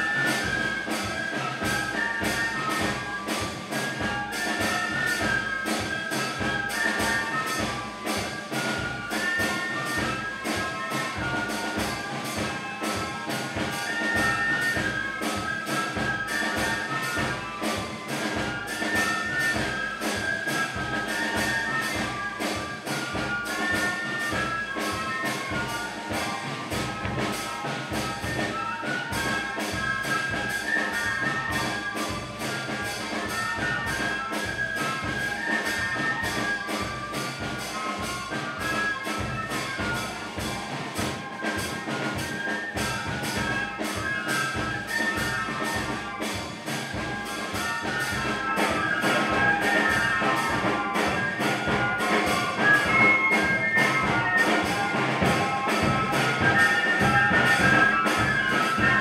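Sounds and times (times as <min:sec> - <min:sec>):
brass band music: 0:00.0 - 0:59.0.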